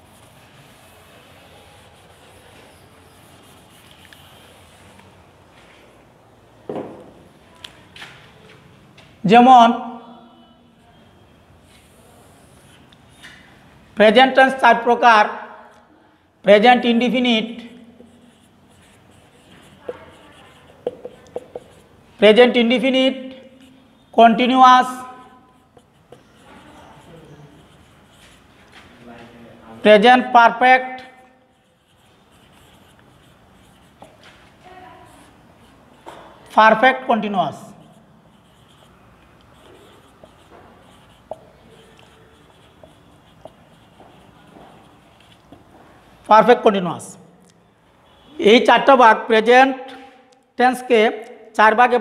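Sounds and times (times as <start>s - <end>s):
marker scratching on whiteboard: 0.0s - 5.2s, 16.8s - 46.6s
marker squeaks: 17.6s - 22.0s, 23.2s - 28.8s, 31.0s - 34.4s, 37.8s - 45.7s
marker ticks: 19.4s - 21.9s, 37.9s - 45.7s.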